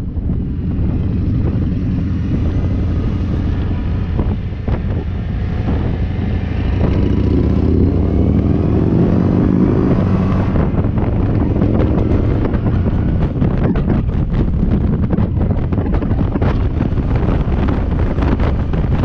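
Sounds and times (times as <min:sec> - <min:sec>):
motorcycle engine running: 0:00.0 - 0:19.0
wind noise on microphone: 0:00.0 - 0:19.0.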